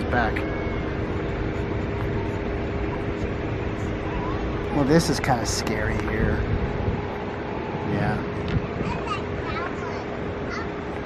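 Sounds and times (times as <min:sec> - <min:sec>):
car rolling slowly: 0:00.0 - 0:11.0
faint steady hum: 0:00.0 - 0:11.0.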